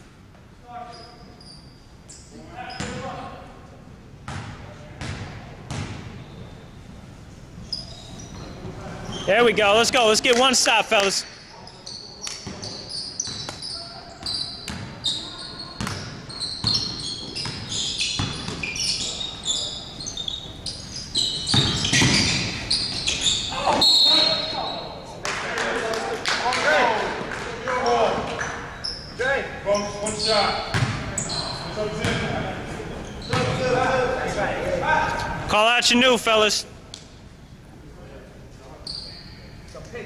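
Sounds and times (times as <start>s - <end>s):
sneakers squeaking: 0.7s - 3.3s, 4.3s - 25.0s, 27.8s - 34.0s, 38.7s - 39.7s
players shouting: 9.3s - 11.2s.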